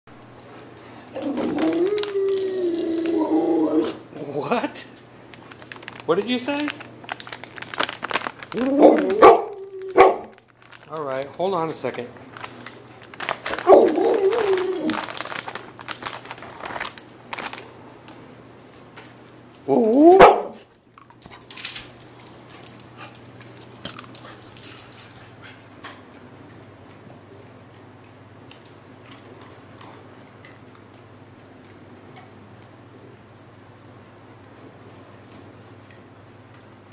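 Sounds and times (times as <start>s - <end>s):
dog wavering vocalization: 1.1s - 4.4s, 8.5s - 10.2s, 13.6s - 15.1s, 19.7s - 20.6s.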